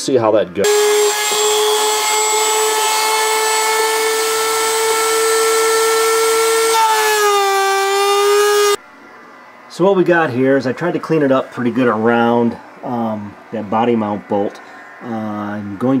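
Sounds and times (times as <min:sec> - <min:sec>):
rotary tool cutting: 0:00.7 - 0:08.8.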